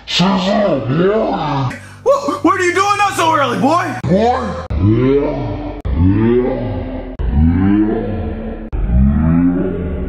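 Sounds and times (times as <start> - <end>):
deep voice rising in pitch: 3.9 - 10.0.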